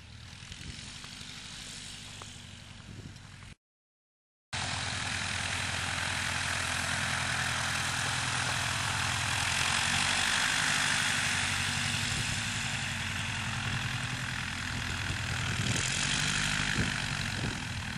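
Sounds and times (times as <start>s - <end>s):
light aircraft engine and propeller: 0.0s - 3.6s, 4.6s - 17.9s.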